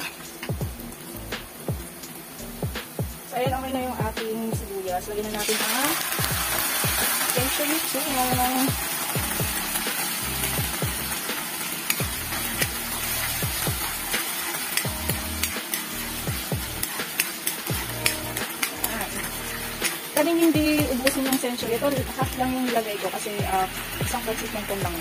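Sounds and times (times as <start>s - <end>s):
food sizzling in oil: 0.0s - 25.0s
metal ladle scraping pan: 5.3s - 24.5s.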